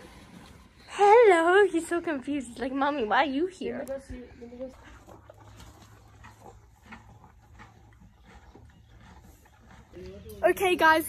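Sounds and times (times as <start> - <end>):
horse chewing grass: 0.0 - 0.9, 3.9 - 11.0.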